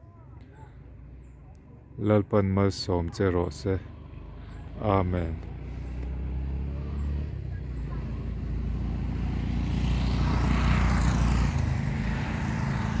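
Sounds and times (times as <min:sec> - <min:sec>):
vehicle engine passing: 0:03.4 - 0:13.0.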